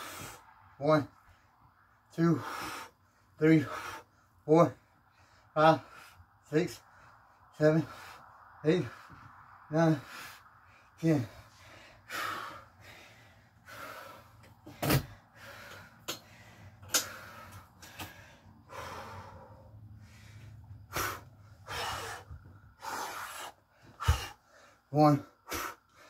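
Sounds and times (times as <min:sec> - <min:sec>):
man breathing heavily: 0:00.0 - 0:26.0.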